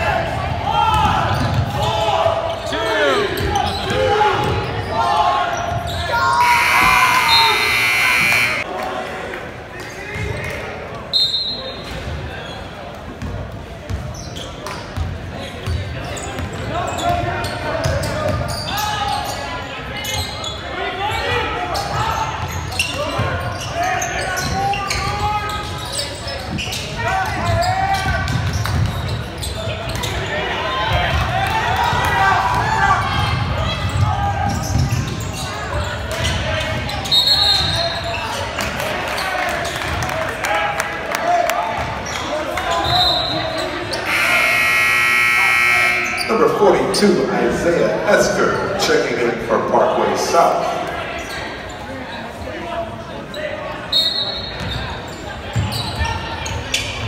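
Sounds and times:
people shouting in a hall: 0.0 - 10.4, 30.2 - 34.7, 40.1 - 46.3
referee's whistle blast: 6.4 - 8.6, 44.0 - 46.6.

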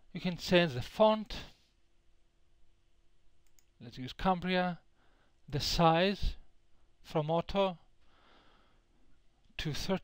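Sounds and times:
faint steady hum: 0.0 - 10.0
faint computer mouse clicks: 3.4 - 3.8.

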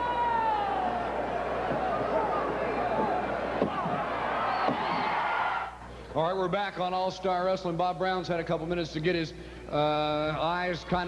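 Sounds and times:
arena crowd cheering and yelling: 0.0 - 5.8.

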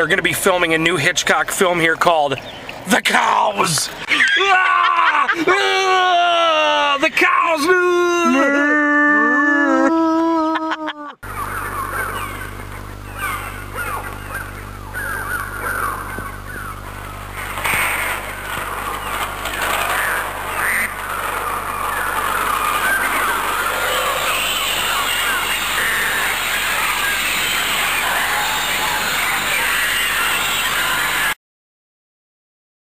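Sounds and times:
flock of birds chattering: 11.2 - 31.4
low hum: 11.2 - 31.4.

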